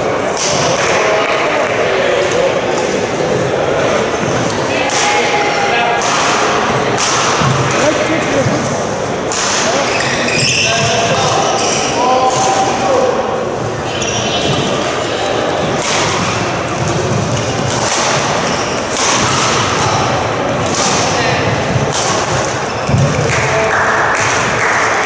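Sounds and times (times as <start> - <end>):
murmur of voices: 0.0 - 25.0
racket striking shuttlecock: 6.0 - 7.9, 9.2 - 9.8, 14.3 - 23.4.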